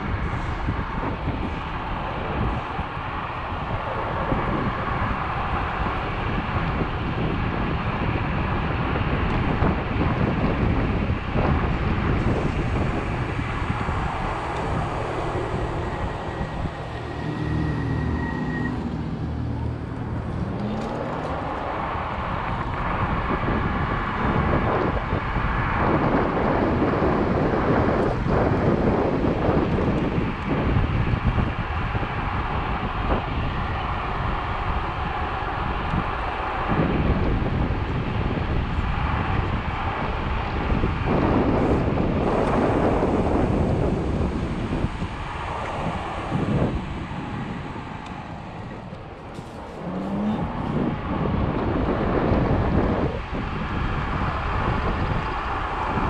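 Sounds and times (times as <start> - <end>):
scooter tyre and road noise: 0.0 - 56.0
wind buffeting microphone: 0.0 - 56.0.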